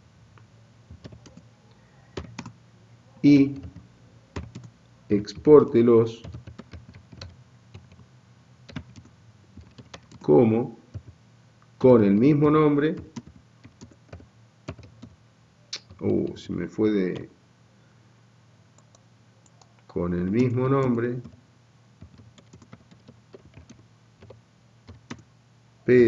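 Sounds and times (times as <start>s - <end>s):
typing on computer keyboard: 0.9s - 1.4s, 2.2s - 2.6s, 3.5s - 3.8s, 4.4s - 4.7s, 6.2s - 8.0s, 8.7s - 10.3s, 10.9s - 11.2s, 12.9s - 15.2s, 18.8s - 21.4s, 22.0s - 25.2s.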